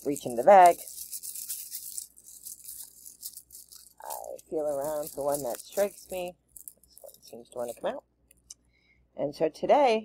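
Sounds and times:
small pieces clicking in a pouch: 0:00.0 - 0:08.6.

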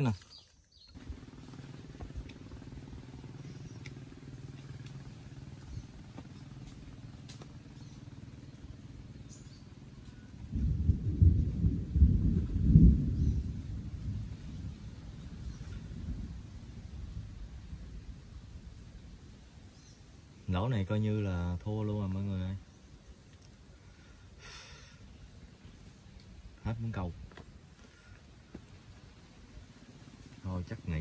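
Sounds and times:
steady low drone: 0:01.0 - 0:20.6
rolling thunder rumble: 0:10.4 - 0:19.3.

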